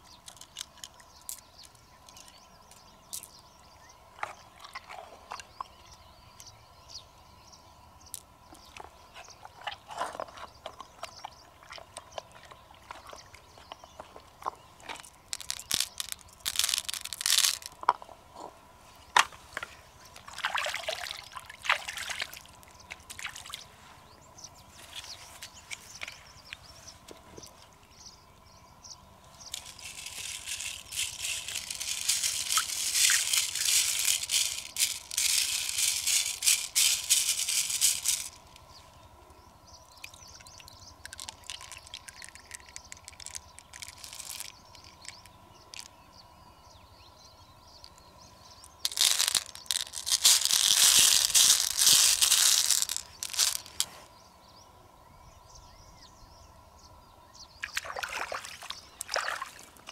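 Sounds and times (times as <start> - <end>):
beads rattling in a shell: 0.0 - 3.3, 14.9 - 17.9, 29.4 - 38.6, 40.0 - 45.9, 48.6 - 53.9
bead clicks: 15.0 - 17.8, 29.5 - 38.6, 41.0 - 45.9, 48.6 - 53.9.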